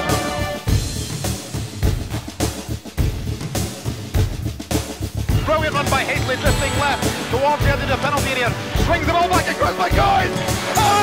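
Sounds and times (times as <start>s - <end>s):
bass and snare drum beating: 0.0s - 11.0s.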